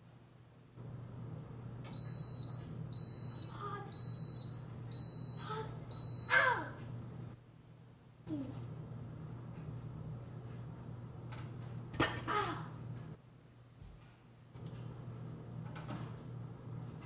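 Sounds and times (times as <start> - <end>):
low appliance hum: 0.0 - 17.0
appliance short high beeps: 2.0 - 6.4.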